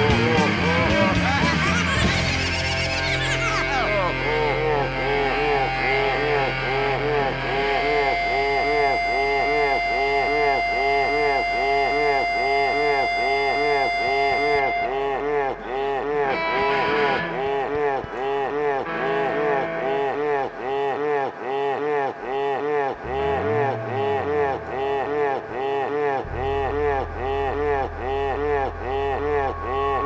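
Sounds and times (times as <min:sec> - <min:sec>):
live rock band: 0:00.0 - 0:14.9
steady held tones: 0:03.5 - 0:30.0
fast repeating warble: 0:07.6 - 0:14.9.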